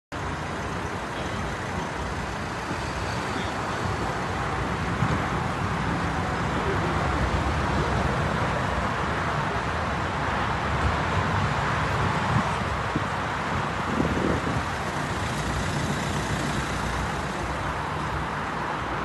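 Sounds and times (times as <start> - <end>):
low traffic rumble: 0.1 - 19.0.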